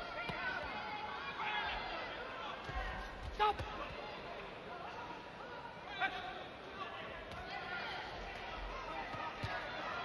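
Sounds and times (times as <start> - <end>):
voices in large arena: 0.0 - 10.0.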